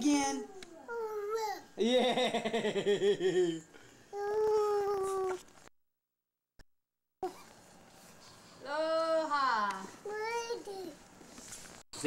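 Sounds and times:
toddler vocalizing: 0.5 - 1.6.

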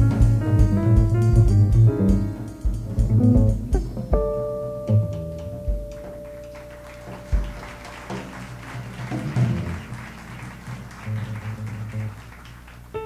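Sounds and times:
drums and cymbals: 0.0 - 6.3, 7.3 - 10.1
double bass plucking: 0.0 - 10.0, 10.6 - 12.3.

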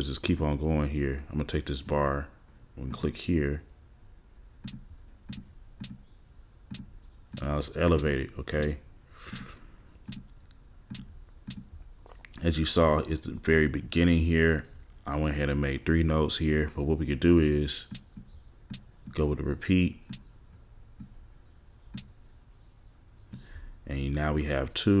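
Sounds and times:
faint background hiss: 0.0 - 25.0
hi-hat clicks: 4.6 - 6.0, 6.7 - 10.3, 10.9 - 11.7, 17.9 - 19.2.

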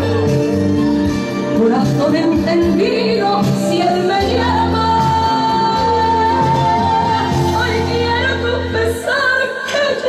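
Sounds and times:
music with steady bass line: 0.0 - 10.0.

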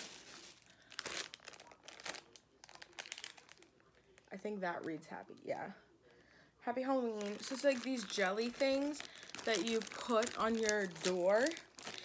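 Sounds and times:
plastic packaging crinkling: 0.0 - 4.3, 7.0 - 12.0.

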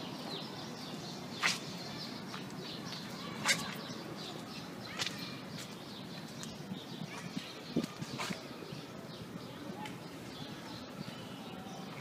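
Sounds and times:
birds chirping faintly: 0.0 - 12.0.

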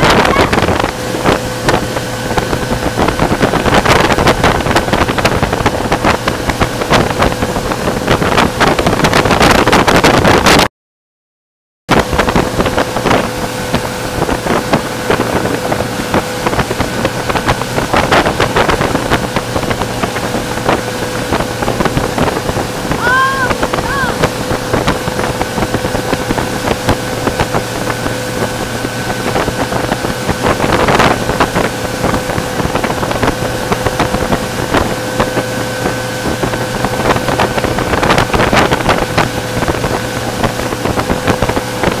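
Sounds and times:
churning wake rushing: 0.0 - 10.7, 11.9 - 42.0
motorboat engine running: 0.0 - 10.7, 11.9 - 42.0
wind buffeting microphone: 0.0 - 10.7, 11.9 - 42.0.

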